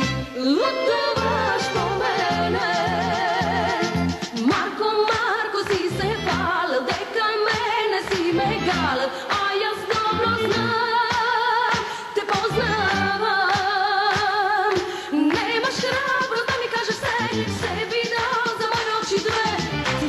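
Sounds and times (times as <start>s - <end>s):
woman singing with vibrato: 0.3s - 20.0s
band with steady beat: 1.2s - 6.5s, 14.8s - 20.0s.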